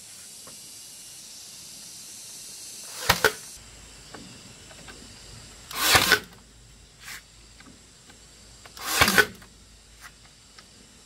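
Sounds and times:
nail gun firing: 0:02.9 - 0:03.4, 0:05.7 - 0:06.4, 0:08.8 - 0:09.5.

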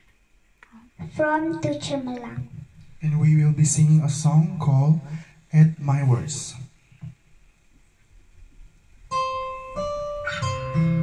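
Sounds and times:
bass notes: 0:09.1 - 0:11.0
plucked acoustic guitar: 0:09.1 - 0:11.0.

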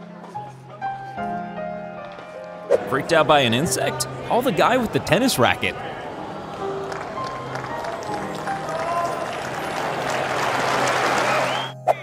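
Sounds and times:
background music: 0:00.0 - 0:12.0
tennis crowd noise: 0:01.8 - 0:11.8
crowd applause: 0:04.6 - 0:11.8.

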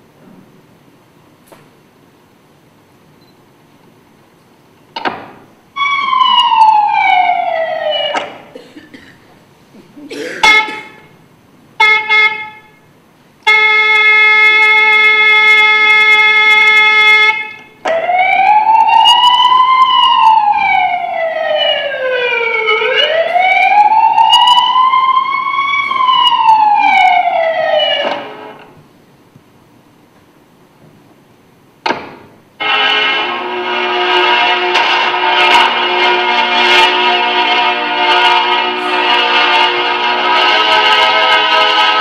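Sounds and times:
siren wailing: 0:05.7 - 0:08.5, 0:13.5 - 0:28.7, 0:32.6 - 0:42.0
steady held tone: 0:35.6 - 0:41.6.

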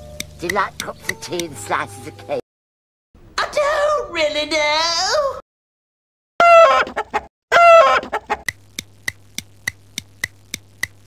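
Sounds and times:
music with ticking beat: 0:00.0 - 0:01.6, 0:08.5 - 0:11.0
chicken clucking calls: 0:06.4 - 0:08.5.

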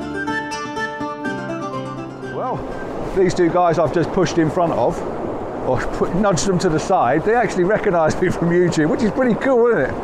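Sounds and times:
background music with held notes: 0:00.0 - 0:03.6.

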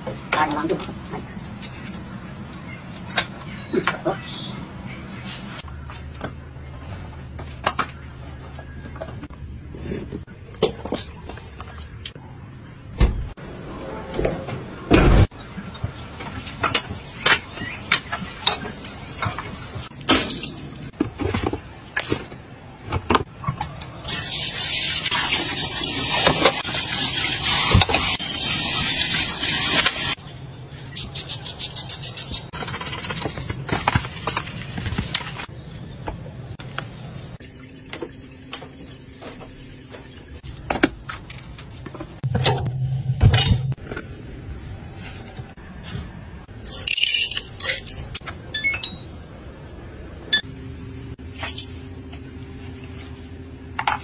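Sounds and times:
short electronic beeps rising in pitch: 0:48.5 - 0:49.1.

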